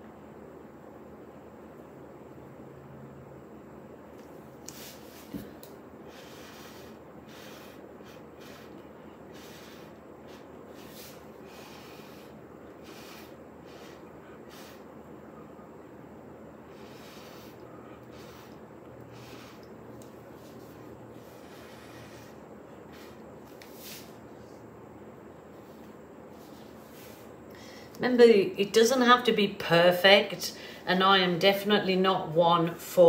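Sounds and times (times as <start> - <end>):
breath puffs through a straw: 6.1 - 14.9, 16.7 - 19.7, 21.2 - 23.2.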